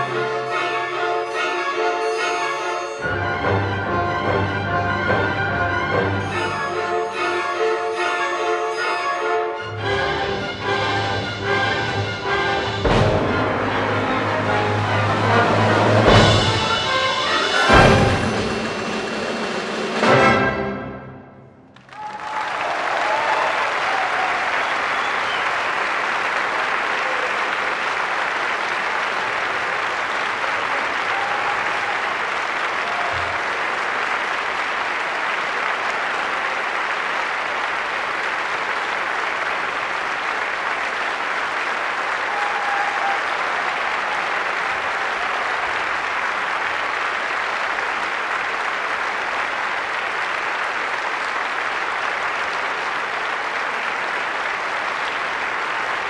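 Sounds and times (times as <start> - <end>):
audience applause: 0.0 - 20.3, 21.7 - 56.0.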